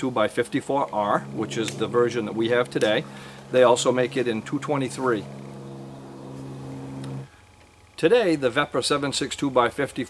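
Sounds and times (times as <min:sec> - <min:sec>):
man speaking: 0:00.0 - 0:05.3.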